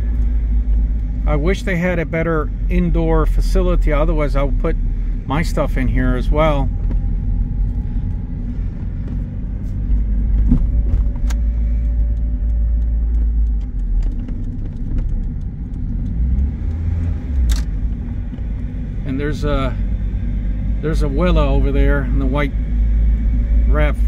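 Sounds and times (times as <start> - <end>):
car engine low rumble: 0.0 - 24.0
sharp clicks: 11.0 - 18.0.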